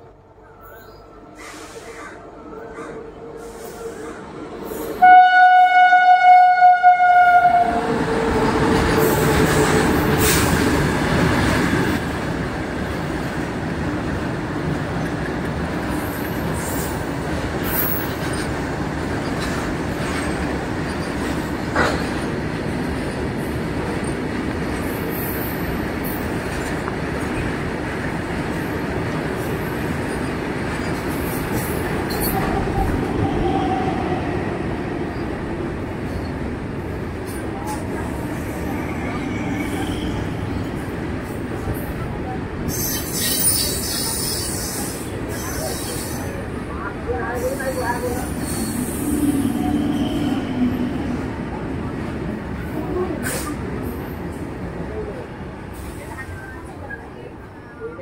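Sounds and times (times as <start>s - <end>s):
train wheels rumbling on rail: 0.7s - 58.0s
locomotive horn: 5.0s - 8.5s.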